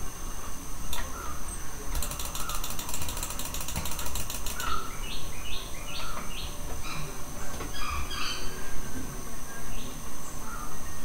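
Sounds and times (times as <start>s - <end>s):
faint steady hum: 0.0s - 11.0s
rapid clicking: 1.9s - 5.0s.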